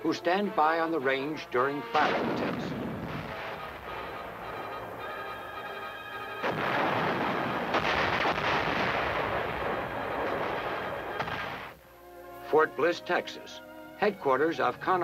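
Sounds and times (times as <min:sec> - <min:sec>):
heavy guns firing: 0:02.0 - 0:04.0, 0:06.4 - 0:11.7.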